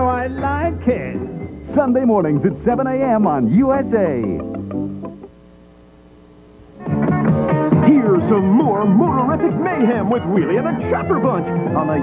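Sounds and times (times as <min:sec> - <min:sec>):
music: 0:00.0 - 0:05.4, 0:06.6 - 0:12.0
low electrical hum: 0:00.0 - 0:12.0.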